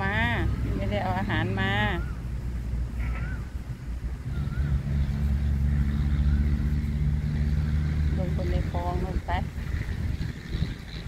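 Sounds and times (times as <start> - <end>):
motor engine humming: 0.0 - 11.0.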